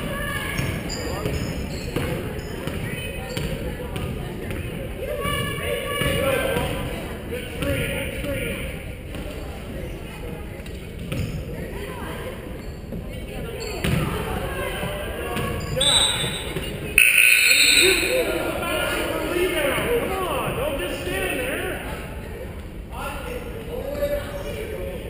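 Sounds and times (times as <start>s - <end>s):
voices echoing: 0.0s - 25.0s.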